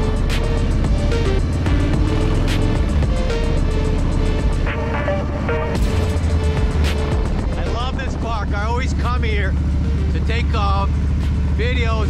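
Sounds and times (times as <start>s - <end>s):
wind rumble: 0.0s - 10.2s
background music: 0.0s - 12.0s
motorcycle engine running: 0.0s - 12.0s
person speaking: 7.5s - 9.4s.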